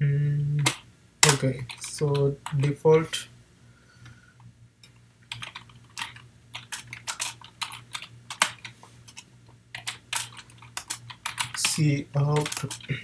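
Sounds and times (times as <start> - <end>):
computer keyboard typing: 0.6 - 2.8, 5.3 - 13.0.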